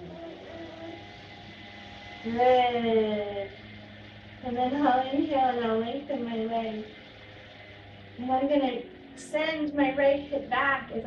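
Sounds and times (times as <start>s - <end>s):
small engine running: 0.0s - 11.0s.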